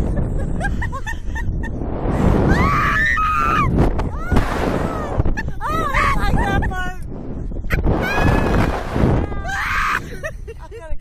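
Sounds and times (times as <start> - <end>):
wind buffeting microphone: 0.0 - 11.0
woman squealing: 9.3 - 10.2.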